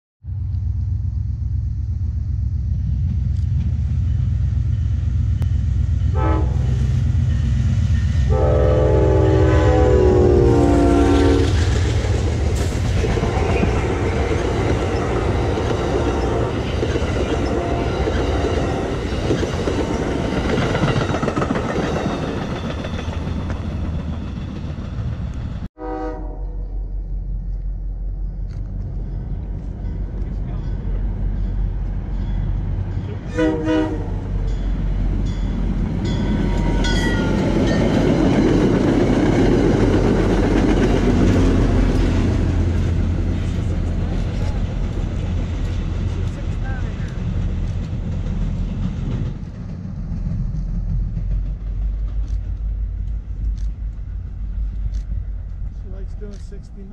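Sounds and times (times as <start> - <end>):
train rumble and rail noise: 0.2 - 56.9
train horn blasts: 6.0 - 6.9, 8.2 - 11.8, 15.1 - 16.8, 17.4 - 19.0, 25.8 - 26.8, 33.2 - 34.5.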